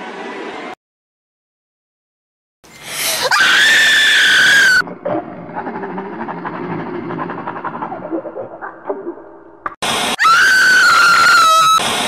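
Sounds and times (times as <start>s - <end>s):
high-pitched human scream: 3.2s - 4.8s, 10.2s - 11.8s.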